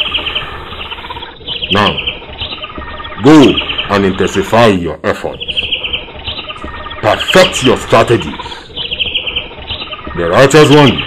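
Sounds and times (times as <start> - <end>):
insects chirping in trills: 0.0 - 4.6, 5.3 - 11.0.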